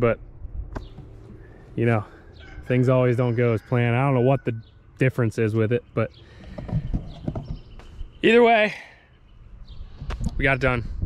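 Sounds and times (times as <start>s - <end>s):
camera handling thumps: 0.7s - 1.2s.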